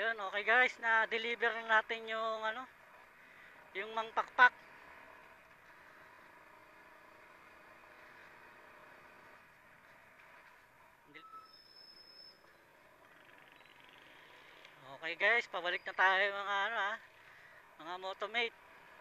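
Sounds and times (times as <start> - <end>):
faint motorcycle road noise: 0.0 - 19.0.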